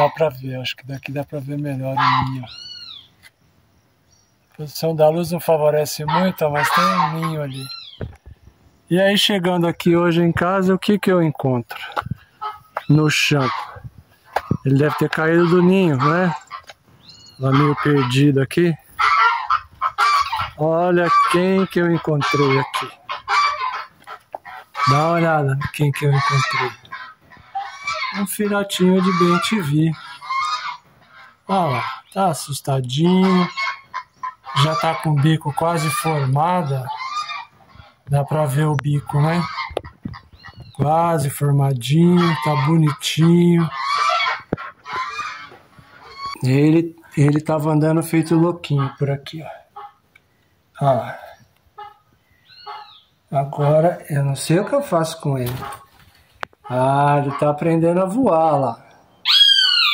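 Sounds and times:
bird harsh raspy calls: 0.0s - 59.9s.

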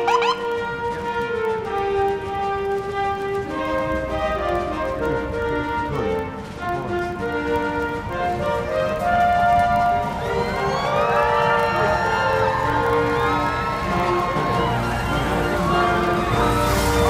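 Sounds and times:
instrumental background music: 0.0s - 10.3s
police sirens wailing: 0.0s - 17.0s.

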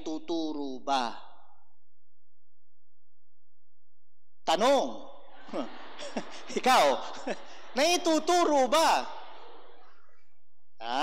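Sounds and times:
man speaking into microphone: 0.0s - 1.6s, 4.5s - 9.3s, 10.8s - 11.0s.

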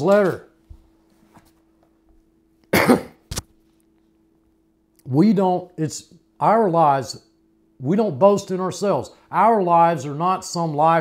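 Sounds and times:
man coughing: 2.7s - 3.2s.

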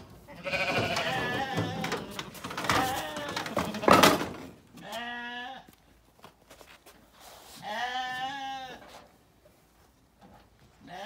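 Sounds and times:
sheep bleating: 0.3s - 4.0s.

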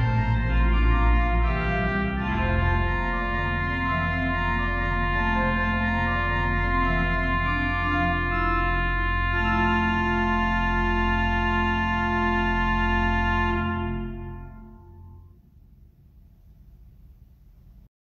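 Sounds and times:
organ playing sustained chords: 0.0s - 15.4s.

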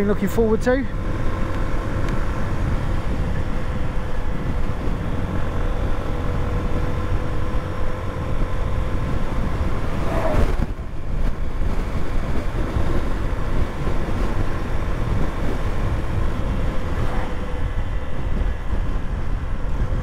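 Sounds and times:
motorcycle engine cruising: 0.0s - 20.0s
wind and road noise: 0.0s - 20.0s.

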